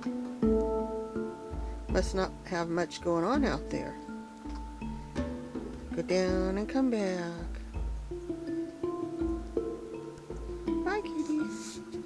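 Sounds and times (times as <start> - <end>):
plucked string instrument music: 0.0 - 12.0.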